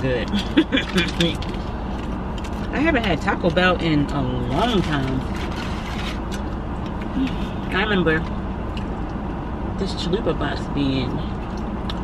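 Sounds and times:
car cabin hum and hiss: 0.0 - 12.0
food wrapper crinkling: 4.4 - 7.0.

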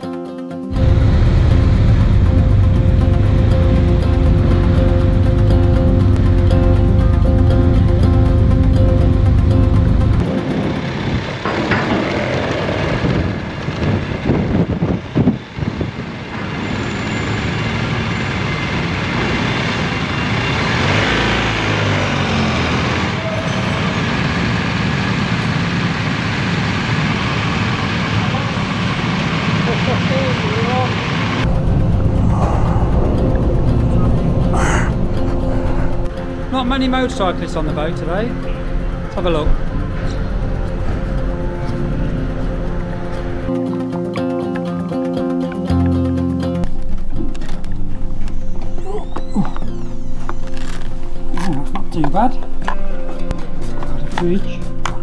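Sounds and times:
motorcycle engine rumble: 0.7 - 16.7, 17.5 - 43.6
vehicle engines running: 0.7 - 55.0
distant voices: 16.2 - 43.5.

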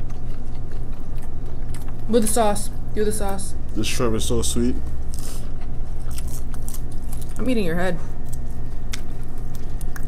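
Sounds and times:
chewing food: 0.0 - 2.6, 5.0 - 10.0
low background hum: 0.0 - 10.0.

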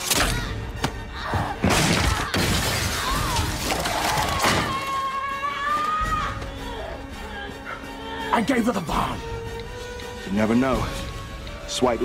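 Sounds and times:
orchestral score: 0.0 - 12.0
crashes and shattering: 1.6 - 5.0.

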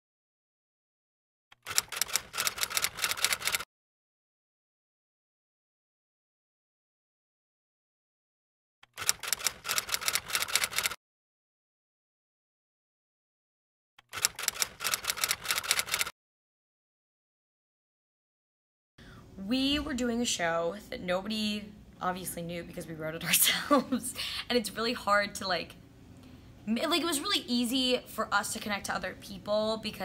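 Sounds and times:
typewriter keystroke clicks: 1.6 - 3.6, 8.8 - 11.0, 14.1 - 16.1.

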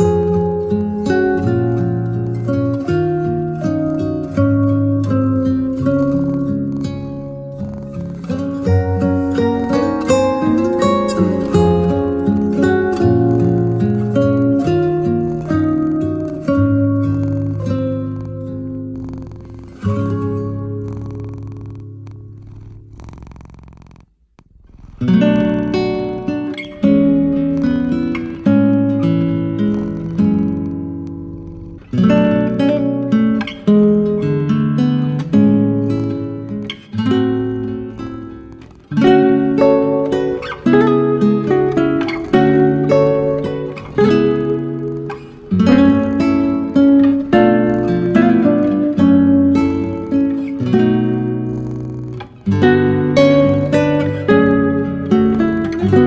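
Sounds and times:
acoustic guitar plucked notes: 0.0 - 22.4, 25.0 - 56.0.

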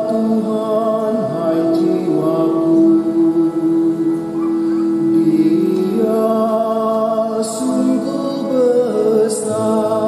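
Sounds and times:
man singing psalm: 0.0 - 10.0.

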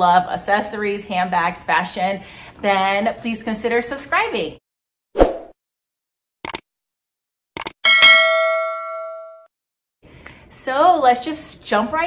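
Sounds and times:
bright bell ding: 7.8 - 9.5.

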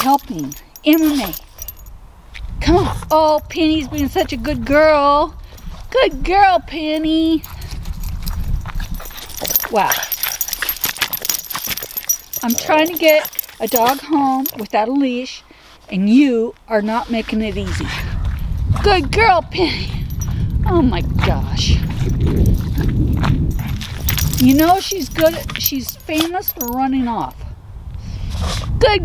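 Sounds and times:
leash clips and tag jingling: 0.0 - 27.5
footsteps on gravel: 7.4 - 14.7.

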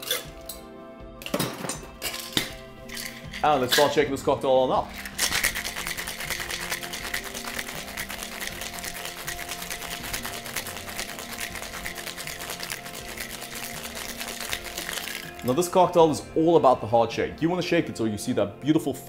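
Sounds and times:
ice cubes rattling in shaker: 2.0 - 4.0, 4.8 - 15.6.

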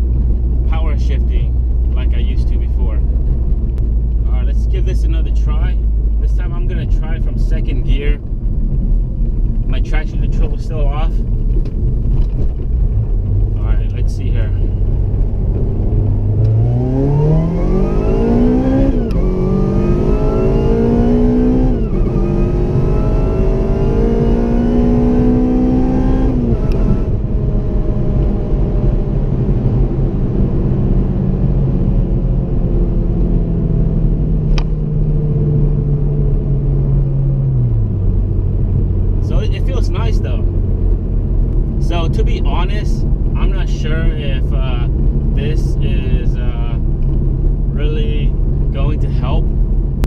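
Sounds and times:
car engine revving through gears: 14.6 - 31.9.

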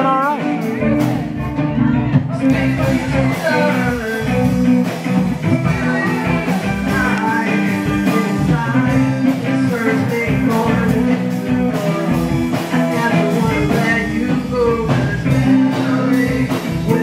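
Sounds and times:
electric guitar: 0.0 - 17.0
person singing into microphone: 0.0 - 17.0
drum hits: 0.6 - 17.0.

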